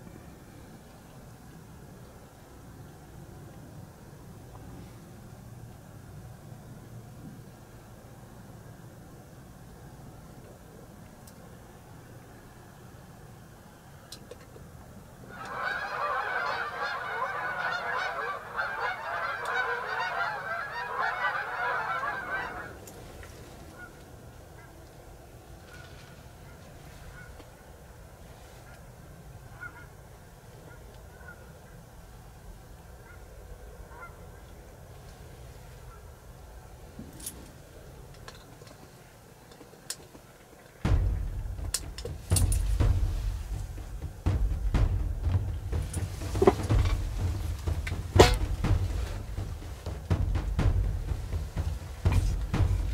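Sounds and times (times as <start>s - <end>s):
geese honking: 15.2s - 24.8s, 29.5s - 30.0s, 33.0s - 34.5s, 40.9s - 52.9s
handling rumble: 40.8s - 52.9s.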